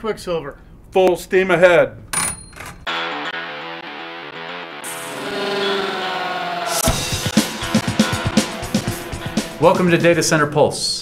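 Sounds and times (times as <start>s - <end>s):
plucked guitar music: 2.9s - 10.0s.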